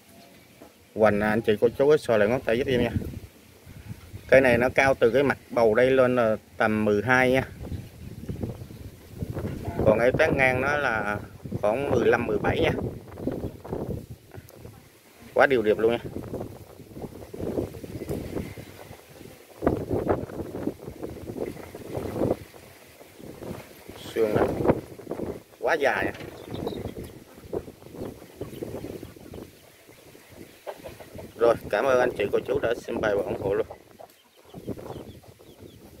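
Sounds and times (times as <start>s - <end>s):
wind buffeting microphone: 2.2s - 5.5s, 6.6s - 36.0s
low bird clucking: 7.2s - 36.0s
high bird chirps: 26.2s - 31.4s, 33.3s - 36.0s.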